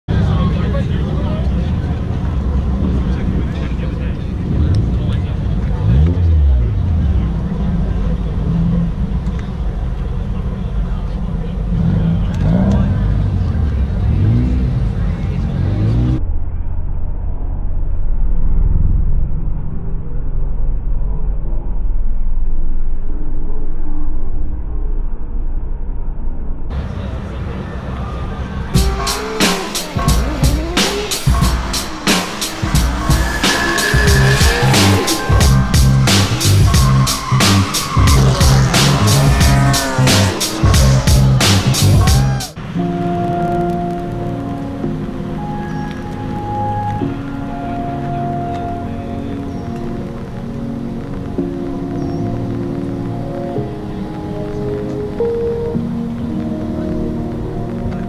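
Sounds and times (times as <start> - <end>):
people talking: 0.1 - 16.2, 26.7 - 42.6
car engines revving: 0.1 - 16.3, 26.7 - 42.8
background music: 28.7 - 58.0.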